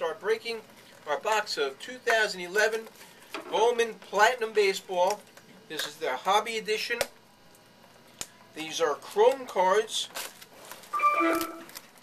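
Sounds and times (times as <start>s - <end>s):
foil wrapper crinkling: 9.0s - 12.0s
electronic chime tune: 11.0s - 11.7s.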